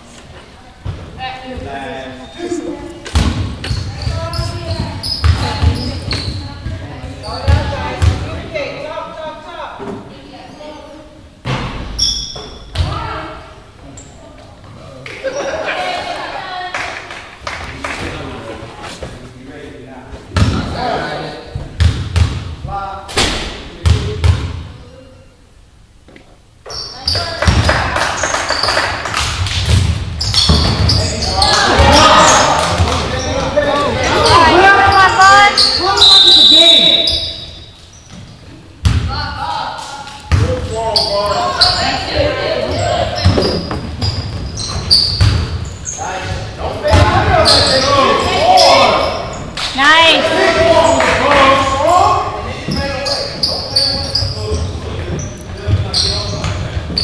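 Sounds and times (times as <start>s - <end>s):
basketball bouncing on gym floor: 3.0s - 8.3s, 21.6s - 22.6s, 27.0s - 33.6s, 40.3s - 40.7s, 42.6s - 45.7s
people shouting: 31.4s - 32.9s.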